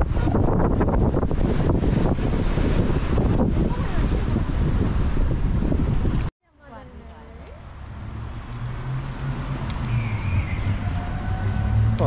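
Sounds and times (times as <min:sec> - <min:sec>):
wind buffeting microphone: 0:00.0 - 0:06.3, 0:06.9 - 0:12.0.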